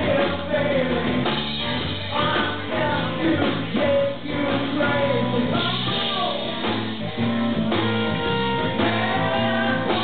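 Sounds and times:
bass line: 0.0s - 10.0s.

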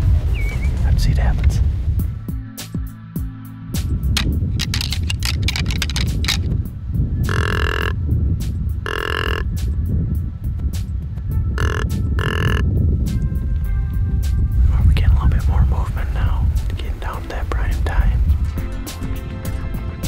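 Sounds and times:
background music: 0.0s - 20.0s
antlers rattling together: 4.2s - 6.6s.

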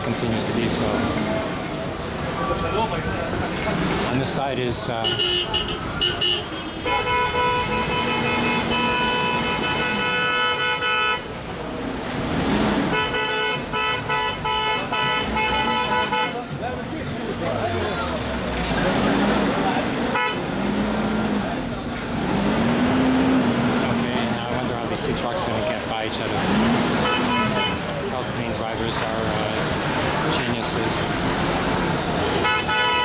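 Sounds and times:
road traffic noise: 0.0s - 33.0s
vehicle horn blasts: 5.0s - 11.3s, 12.9s - 16.4s, 20.1s - 20.4s, 27.0s - 27.9s, 32.4s - 33.0s.

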